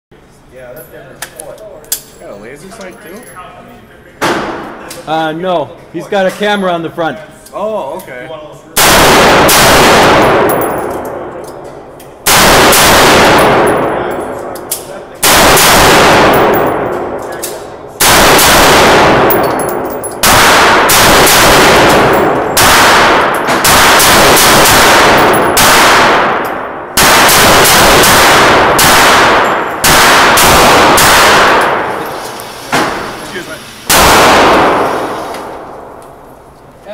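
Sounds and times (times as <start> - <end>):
rifle shots echoing: 8.8 - 11.4, 12.2 - 32.1, 33.9 - 36.2.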